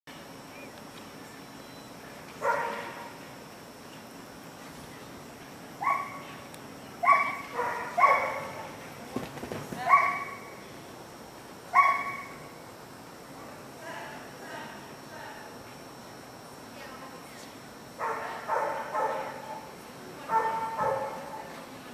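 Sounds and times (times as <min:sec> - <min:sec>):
dog barking: 0:02.4 - 0:03.1, 0:05.8 - 0:06.3, 0:07.0 - 0:08.8, 0:09.9 - 0:10.5, 0:11.7 - 0:12.4, 0:18.0 - 0:19.6, 0:20.3 - 0:21.5.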